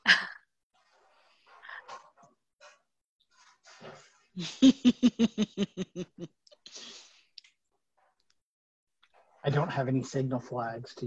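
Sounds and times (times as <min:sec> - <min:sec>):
woman laughing: 0:00.0 - 0:00.4, 0:04.4 - 0:06.9.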